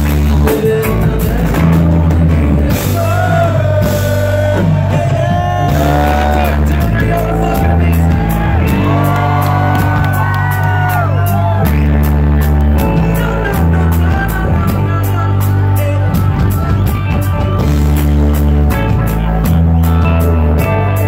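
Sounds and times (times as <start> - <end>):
live reggae-rock band playing: 0.0 - 21.0.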